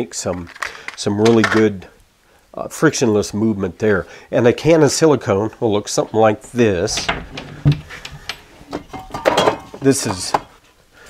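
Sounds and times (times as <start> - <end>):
metal spray cans clinking: 8.7 - 10.4.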